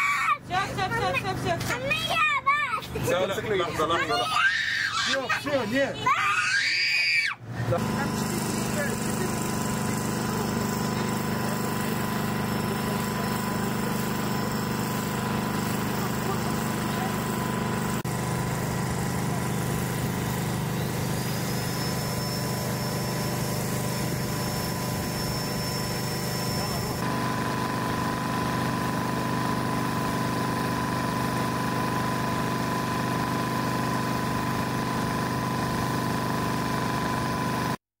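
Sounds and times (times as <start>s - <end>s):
portable generator humming: 7.4s - 37.8s
thin high whine: 20.3s - 27.0s.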